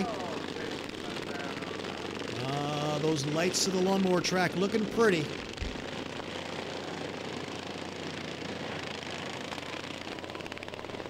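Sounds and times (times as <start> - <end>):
racing lawn mower engines: 0.0 - 11.0.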